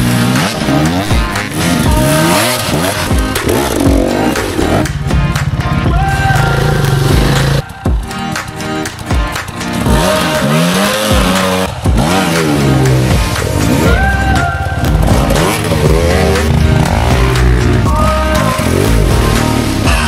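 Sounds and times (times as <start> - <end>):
motorcycle engines revving: 0.0 - 20.0
music playing: 0.0 - 20.0.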